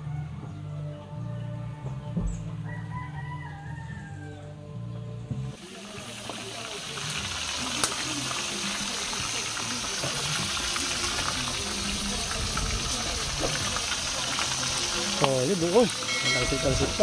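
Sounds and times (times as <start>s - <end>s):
fish sizzling in oil: 5.6s - 17.0s.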